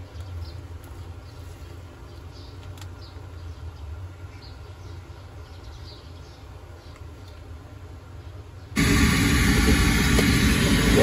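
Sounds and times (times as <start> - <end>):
radio static hiss: 8.8 - 11.0.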